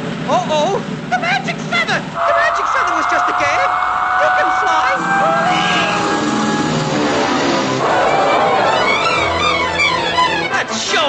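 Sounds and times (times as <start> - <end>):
high whistling rush: 1.9 - 10.8.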